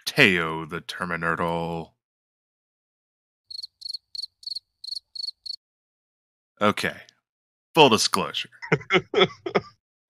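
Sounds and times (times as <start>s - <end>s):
crickets chirping: 3.5s - 5.6s.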